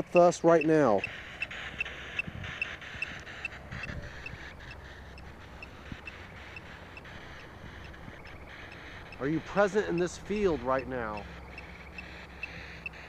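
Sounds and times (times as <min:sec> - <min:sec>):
low steady rumble: 0:00.8 - 0:13.0.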